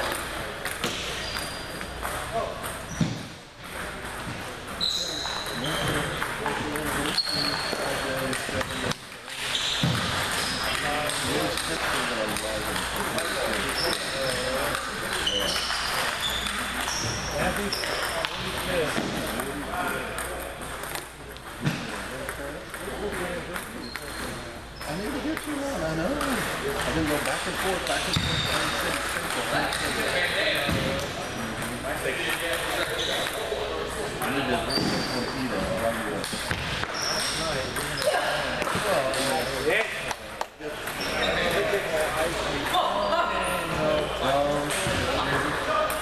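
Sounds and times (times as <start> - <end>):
table tennis balls clicking: 0.0 - 3.0, 3.6 - 21.6, 22.2 - 24.3, 31.5 - 34.0.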